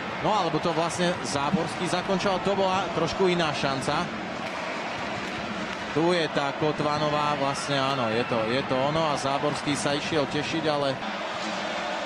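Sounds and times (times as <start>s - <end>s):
ice hockey arena crowd hum: 0.0s - 12.0s.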